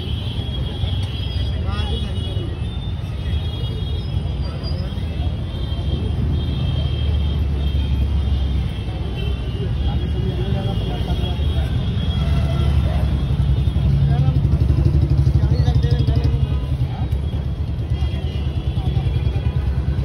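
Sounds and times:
road traffic rumble: 0.0 - 20.0.

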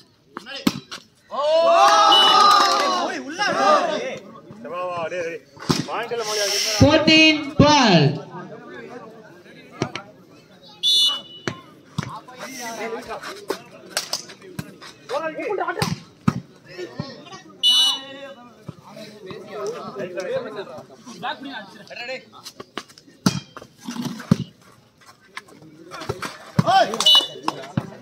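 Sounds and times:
players shouting: 1.3 - 4.3, 26.6 - 27.8
referee's whistle: 2.0 - 2.4, 10.8 - 11.7, 17.6 - 18.2, 27.0 - 27.5.

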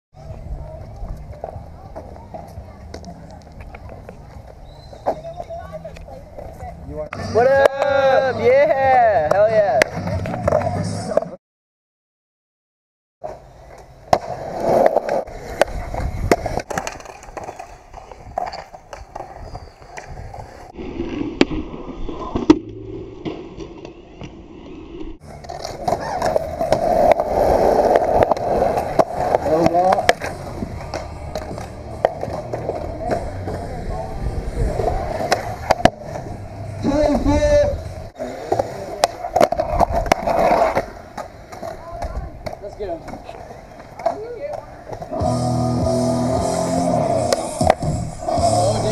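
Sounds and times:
skateboard wheels rolling on concrete: 0.1 - 11.4, 13.2 - 48.9.

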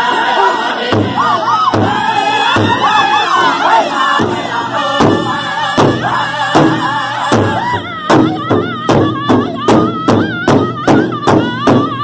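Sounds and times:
group singing in high voices: 0.0 - 12.0
large drum beats: 0.9 - 12.0.

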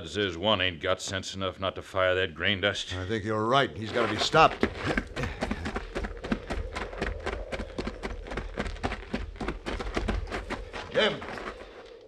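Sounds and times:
running footsteps on hard ground: 3.8 - 12.0.

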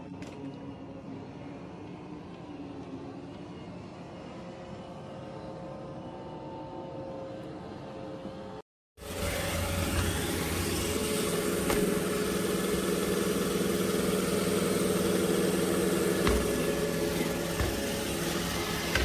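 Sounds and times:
robot vacuum whirring: 9.0 - 19.0.

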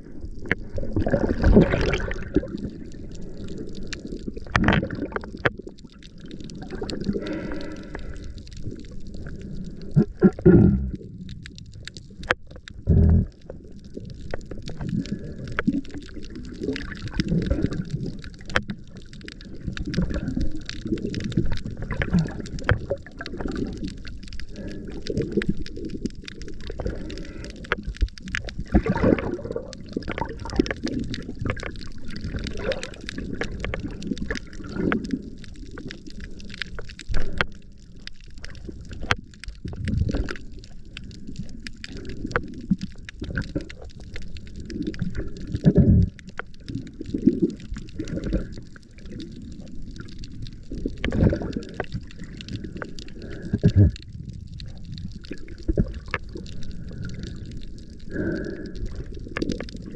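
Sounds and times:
faint clicks and crackles: 0.0 - 59.9
underwater surging and gurgling: 0.0 - 59.9.

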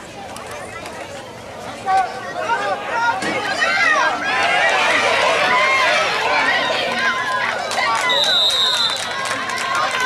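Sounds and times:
spectators shouting and cheering: 0.6 - 10.0.

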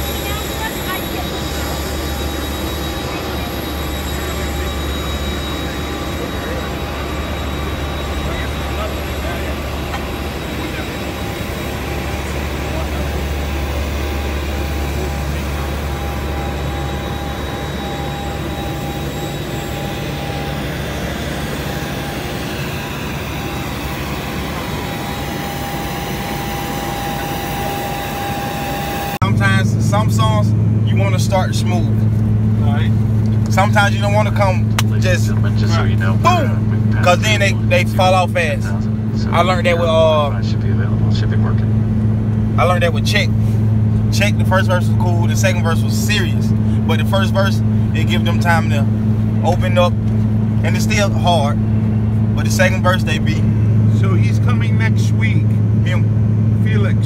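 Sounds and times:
voices: 0.0 - 41.8, 44.1 - 57.0
jet engine rumble and whine: 0.0 - 57.0
aircraft cabin hum: 0.1 - 29.8.

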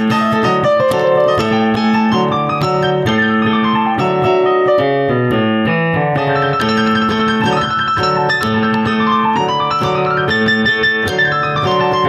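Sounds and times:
piano playing: 0.0 - 12.0.

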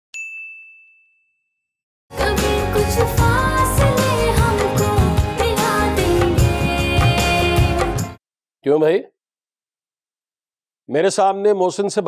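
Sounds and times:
notification bell ding: 0.1 - 1.7.

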